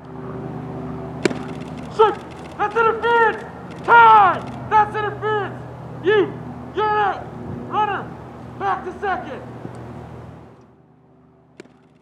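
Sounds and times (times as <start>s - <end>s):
low mechanical hum: 0.0s - 12.0s
baseball popping into mitt: 1.2s - 1.9s, 11.6s - 12.0s.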